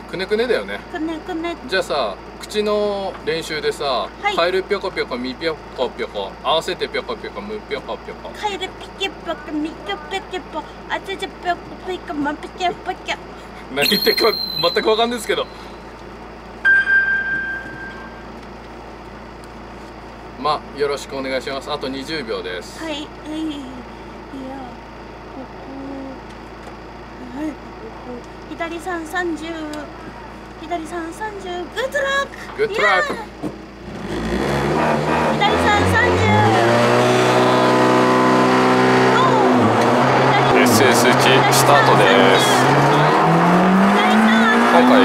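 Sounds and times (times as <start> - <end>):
car background noise: 0.0 - 45.0
high electronic chime: 13.8 - 15.6, 16.6 - 18.3
car engine revving: 33.7 - 45.0.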